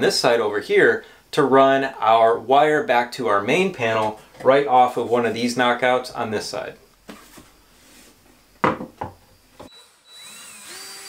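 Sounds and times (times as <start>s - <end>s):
plastic box knocking against wall: 8.6s - 9.2s
cordless drill driving a screw: 9.7s - 11.0s.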